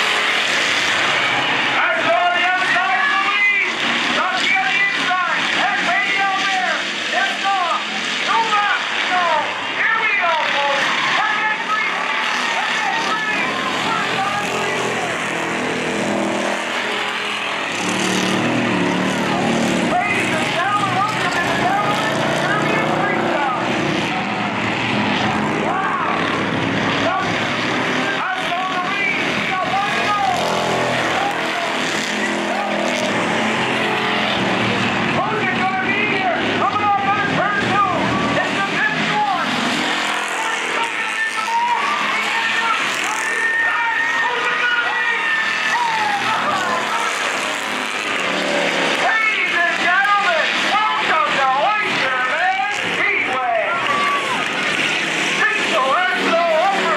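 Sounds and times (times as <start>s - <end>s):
race car engines roaring: 0.0s - 56.9s
person talking: 12.6s - 15.2s.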